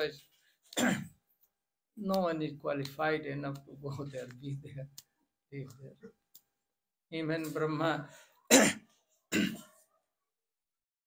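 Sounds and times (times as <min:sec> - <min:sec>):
man coughing: 0:00.8 - 0:01.2, 0:08.5 - 0:09.8.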